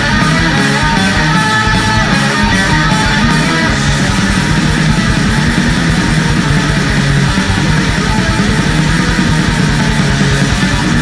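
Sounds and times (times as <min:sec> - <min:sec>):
distorted electric guitars: 0:00.0 - 0:11.0
fast dense drumming: 0:00.0 - 0:11.0.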